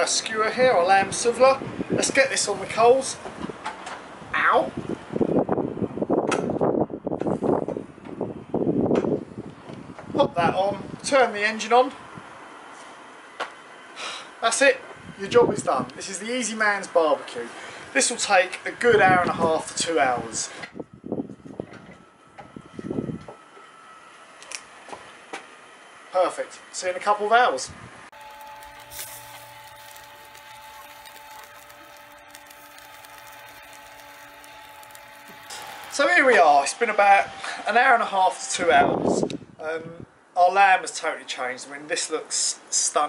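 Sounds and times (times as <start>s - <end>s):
electric rotisserie motor whining: 28.2s - 37.4s.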